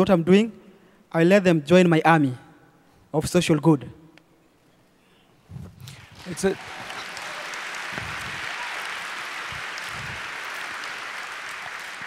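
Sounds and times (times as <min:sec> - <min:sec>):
audience applauding: 0:05.9 - 0:12.0.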